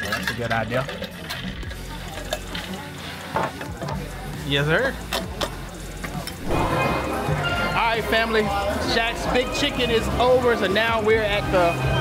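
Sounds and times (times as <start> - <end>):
ice clinking: 0.0 - 2.8.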